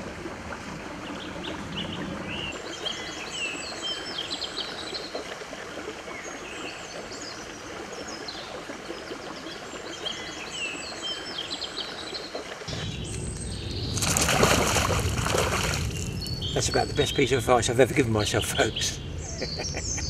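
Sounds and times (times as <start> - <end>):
songbird singing: 0.9 - 20.0.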